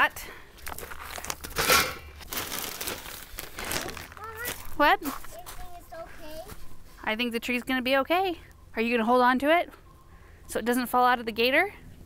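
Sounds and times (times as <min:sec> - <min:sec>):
plastic bags crinkling: 0:00.6 - 0:04.8.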